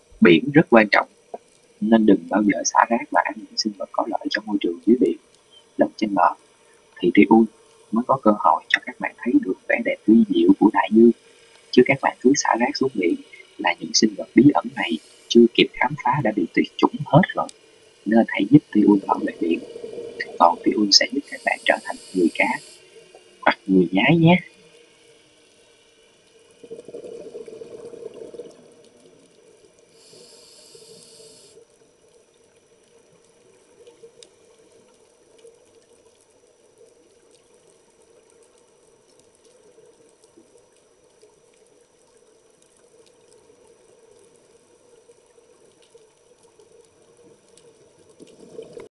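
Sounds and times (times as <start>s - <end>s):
faint water ambience: 0.0s - 48.9s
underwater bubbling: 0.0s - 48.9s
small clicks underwater: 1.0s - 1.8s, 24.5s - 30.2s, 30.9s - 48.9s.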